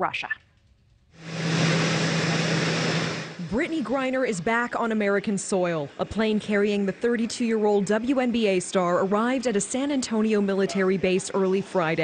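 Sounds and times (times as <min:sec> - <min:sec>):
jet engines running: 0:01.2 - 0:12.0.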